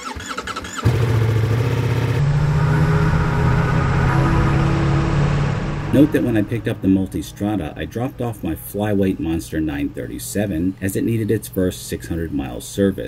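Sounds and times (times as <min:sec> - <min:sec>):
motorcycle engine starting and idling: 0:00.0 - 0:02.5.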